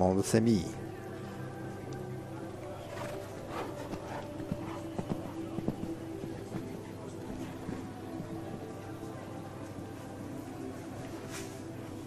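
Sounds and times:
hoofbeats on sand: 2.9 - 8.8.

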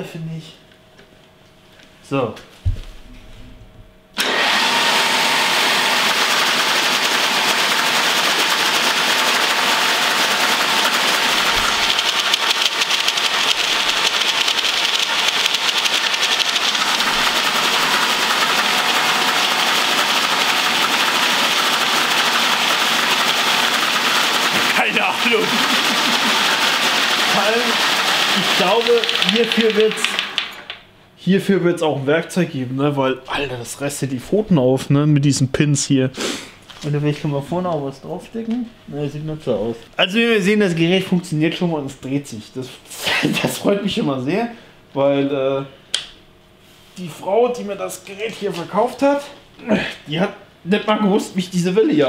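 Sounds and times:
electric motor whirring: 4.2 - 30.8.

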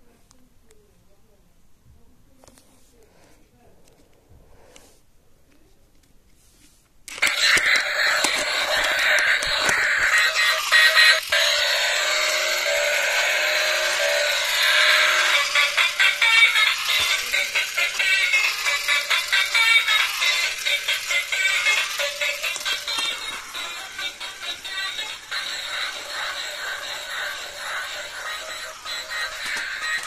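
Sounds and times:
electronic toy music: 7.1 - 30.0.

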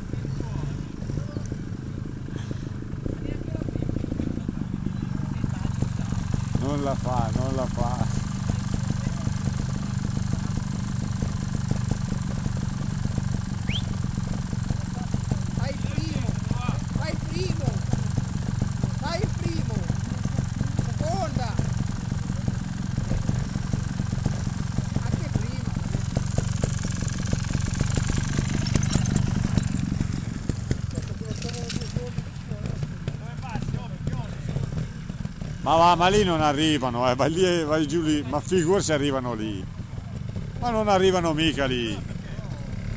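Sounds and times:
motorcycle engines idling: 0.0 - 42.9.

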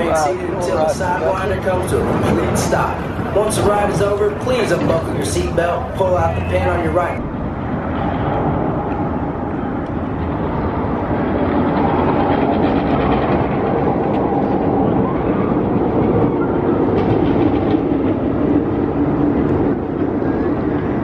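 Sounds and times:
roller coaster rumbling on track: 0.0 - 21.0.

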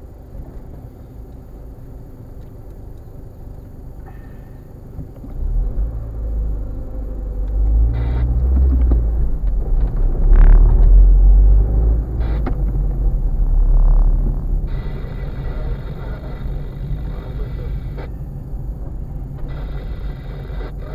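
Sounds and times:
car engine rumble: 0.0 - 20.9
road noise inside car: 0.0 - 20.9.

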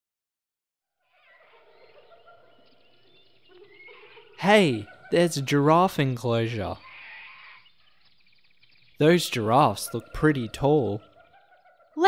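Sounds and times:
distant animal calls: 1.0 - 12.0
high bird chirps: 1.1 - 12.0.

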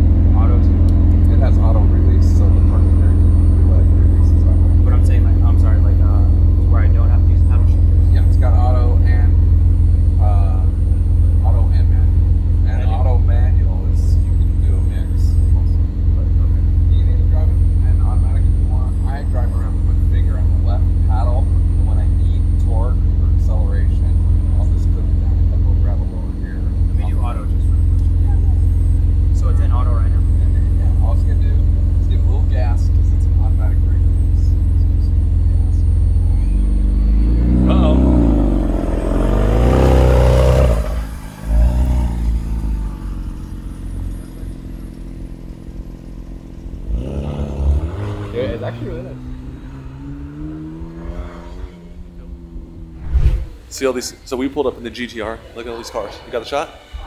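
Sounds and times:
car engine idling and revving: 0.0 - 54.0.

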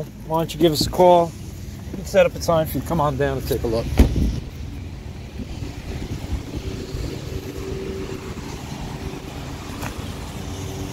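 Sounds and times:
car engine idling: 0.0 - 10.9.

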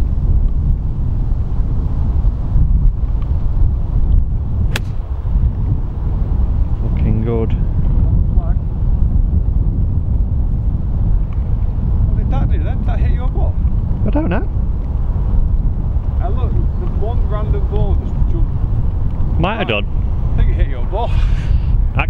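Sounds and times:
wind buffeting microphone: 0.0 - 22.0
men's voices: 19.2 - 21.4.

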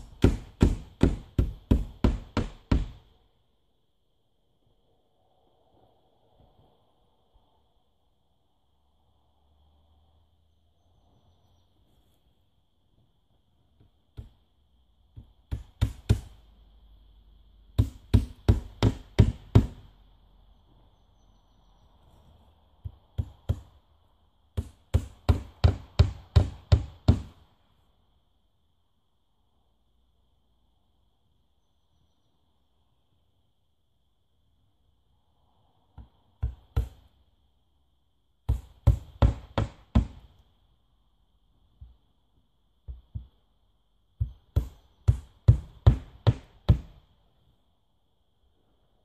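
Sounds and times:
hammer driving nails into wood: 0.0 - 3.0, 15.2 - 16.4, 17.8 - 19.9, 24.6 - 27.4, 36.4 - 37.1, 38.5 - 40.4, 44.2 - 47.0.

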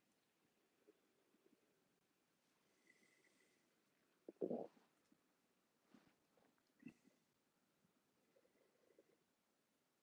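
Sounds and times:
stomach gurgle: 4.2 - 5.1, 6.4 - 7.2.

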